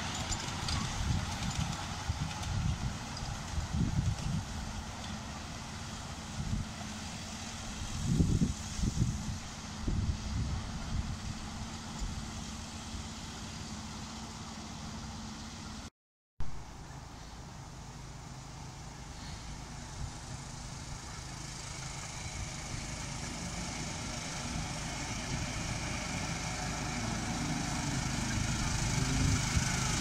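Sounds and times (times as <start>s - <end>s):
miniature train running on track: 0.0s - 7.8s, 18.5s - 30.0s.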